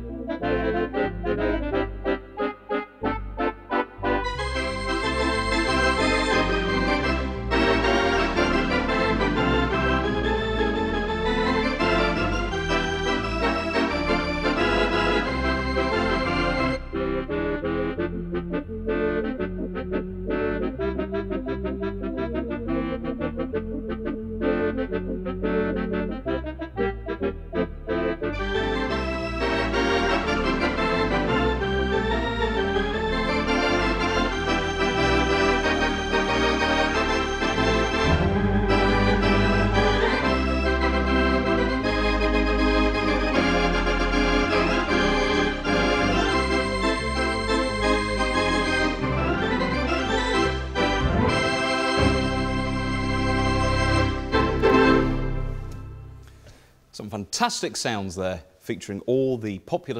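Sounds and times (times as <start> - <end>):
electronic organ playing chords: 0.0 - 56.5
low bass line: 3.0 - 56.3.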